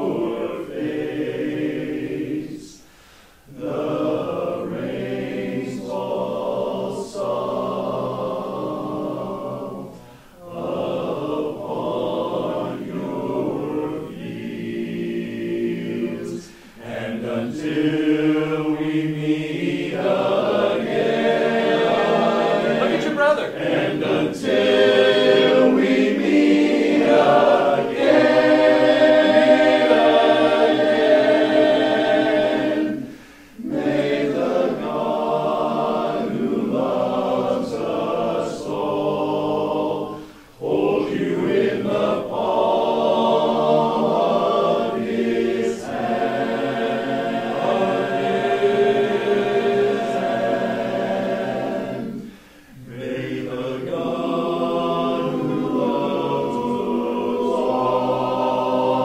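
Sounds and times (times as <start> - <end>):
men's choir singing in harmony: 0.0 - 59.0.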